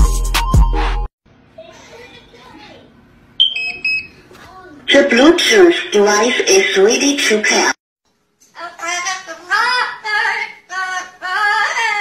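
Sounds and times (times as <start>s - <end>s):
speaker power-on beeps: 3.4s - 4.2s.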